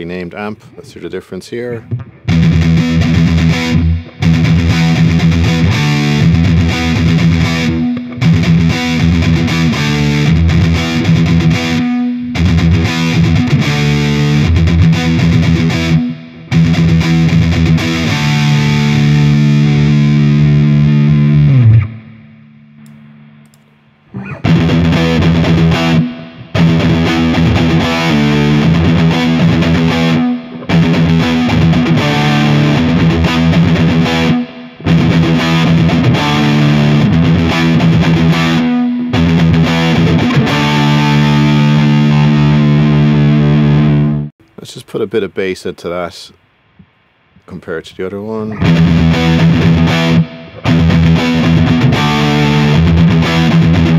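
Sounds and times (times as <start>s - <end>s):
distorted electric guitar riff: 1.9s - 44.3s, 48.4s - 53.9s.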